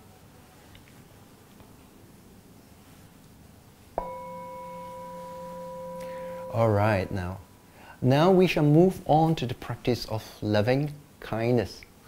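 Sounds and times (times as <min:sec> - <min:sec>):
singing bowl ringing: 0:04.0 - 0:07.8.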